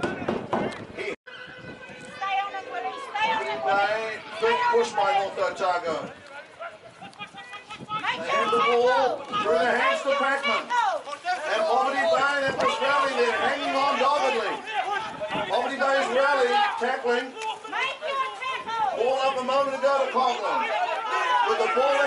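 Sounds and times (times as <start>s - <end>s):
voices talking over one another: 0.0s - 22.0s.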